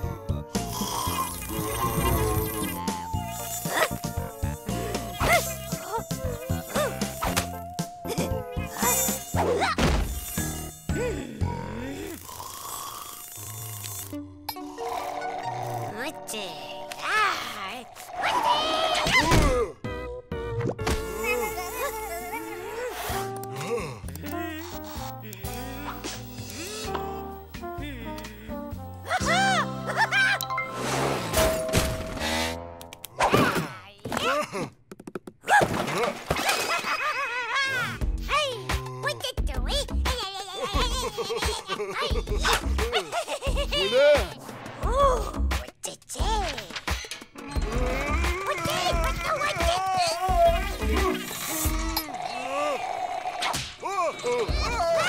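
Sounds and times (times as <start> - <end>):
wavering cartoon vocal sounds: 0.9 - 12.4, 17.0 - 19.8, 21.1 - 27.0, 27.7 - 30.3, 47.4 - 55.0
cartoon mosquito whine: 0.9 - 15.9
cartoon character exclaiming: 37.5 - 41.2, 41.9 - 45.3, 47.7 - 51.2, 54.4 - 55.0.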